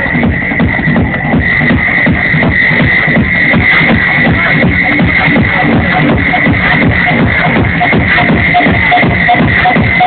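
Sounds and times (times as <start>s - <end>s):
muffled techno music: 0.0s - 10.0s.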